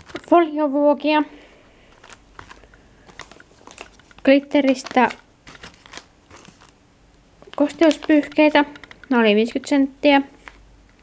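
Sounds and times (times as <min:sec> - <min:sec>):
plastic wrap crinkling: 0:00.0 - 0:00.4, 0:01.8 - 0:06.8, 0:07.4 - 0:09.1
light clicks of foil tins: 0:01.9 - 0:06.8.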